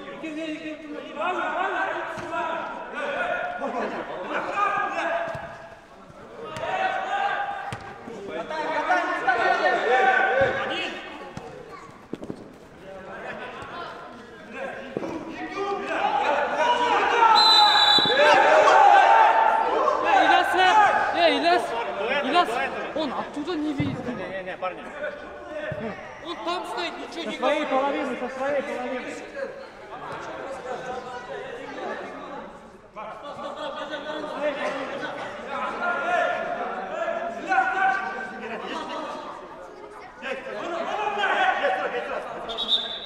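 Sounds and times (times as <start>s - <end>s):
men shouting in a hall: 15.4s - 23.1s, 33.5s - 39.3s, 40.2s - 42.6s.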